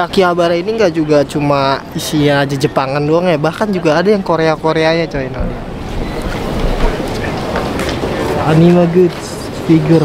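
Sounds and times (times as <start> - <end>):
wind buffeting microphone: 4.6 - 8.5.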